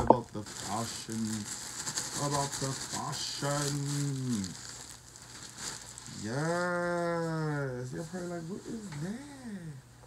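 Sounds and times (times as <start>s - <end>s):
plastic wrapping crinkling: 0.0s - 9.2s.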